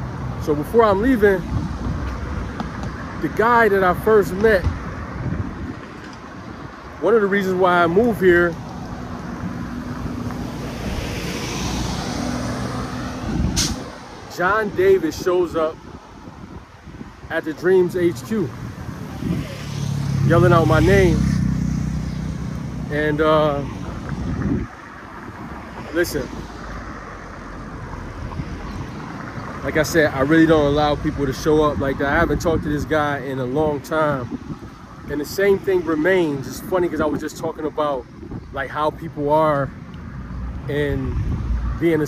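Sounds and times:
vehicle passing by: 0.0s - 42.0s.

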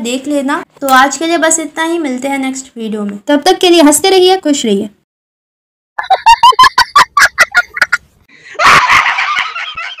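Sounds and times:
woman laughing loudly: 6.0s - 10.0s.

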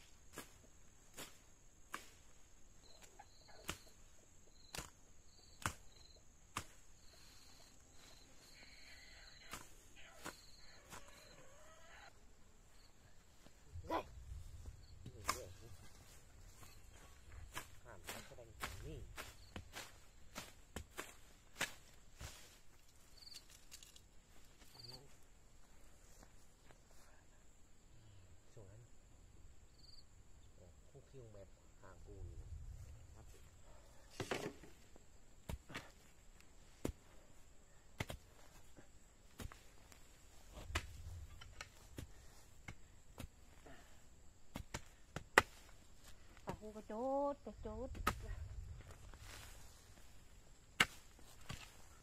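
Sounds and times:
tool striking soil: 0.0s - 7.1s, 9.5s - 11.1s, 14.8s - 22.4s, 34.1s - 37.2s, 37.9s - 46.5s, 47.8s - 52.0s
knife chopping weeds: 0.2s - 4.0s, 4.6s - 7.1s, 9.5s - 11.0s, 15.0s - 22.5s, 35.4s - 46.5s, 47.8s - 48.5s, 49.2s - 52.0s.

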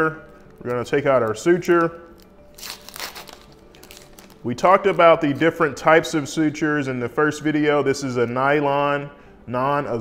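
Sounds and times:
suture packet crinkling: 0.2s - 5.6s.

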